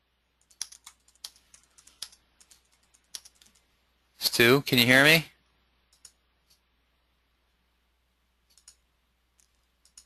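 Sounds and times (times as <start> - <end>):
computer keyboard typing: 0.4 - 3.7, 5.9 - 6.6, 8.5 - 10.0.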